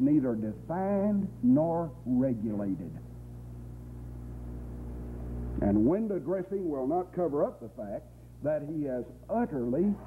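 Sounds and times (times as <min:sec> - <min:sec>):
faint hiss: 0:00.0 - 0:10.0
steady low hum: 0:00.0 - 0:10.0.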